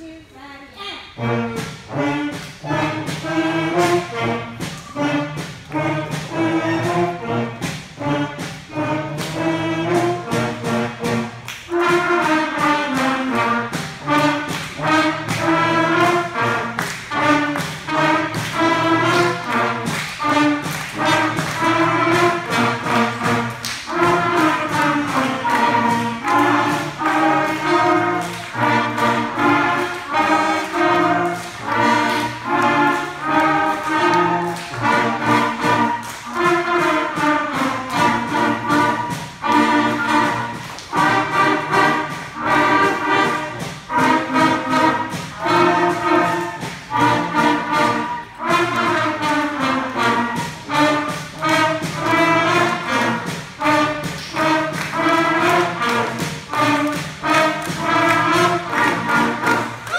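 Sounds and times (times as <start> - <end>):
school concert band playing: 0.0 - 59.9
trumpets: 0.0 - 59.9.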